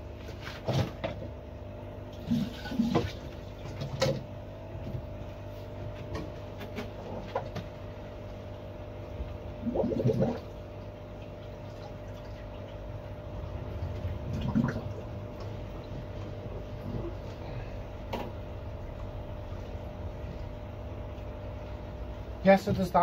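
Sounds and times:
constant low hum: 0.0 - 23.0
water running through a hose: 2.1 - 4.2.

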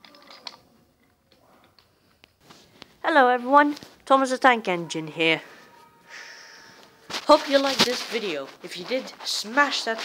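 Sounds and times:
wooden toy trains clicking: 0.0 - 1.9.

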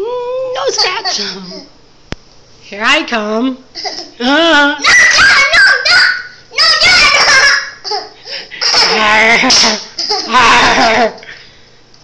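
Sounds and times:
toddler laughing and squealing: 4.8 - 10.8.

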